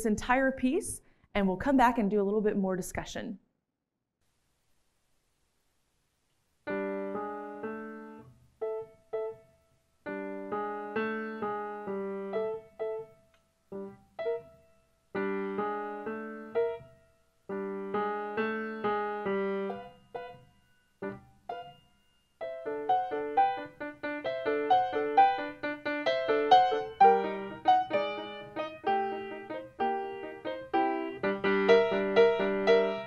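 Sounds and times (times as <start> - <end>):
solo upright piano playing: 6.7 - 33.0.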